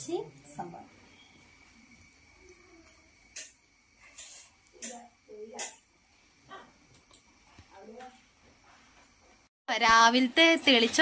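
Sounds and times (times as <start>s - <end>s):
faint small sounds: 0.0s - 9.5s.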